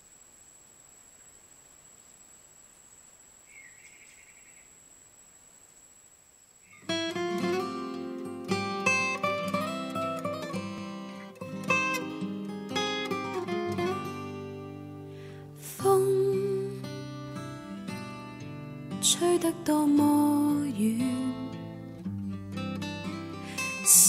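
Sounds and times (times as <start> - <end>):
faint hiss: 0.0 - 22.1, 22.8 - 24.0
acoustic guitar picking: 6.8 - 15.1, 15.9 - 24.0.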